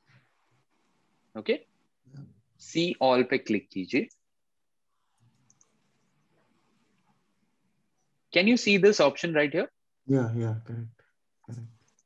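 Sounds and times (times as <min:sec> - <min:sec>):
computer mouse clicks: 0:05.2 - 0:06.3.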